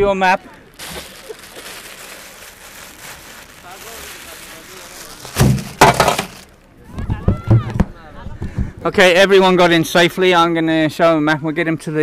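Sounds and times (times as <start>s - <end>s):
steady outdoor hiss: 0.0s - 12.0s
crackling rustles: 0.5s - 6.8s.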